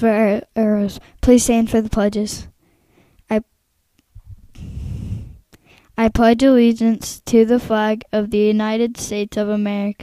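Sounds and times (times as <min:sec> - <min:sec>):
microphone handling rumble: 0:04.2 - 0:05.4.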